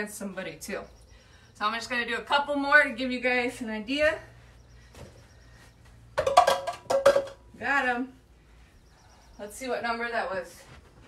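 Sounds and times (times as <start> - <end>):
ball knocking over targets: 6.2 - 7.4.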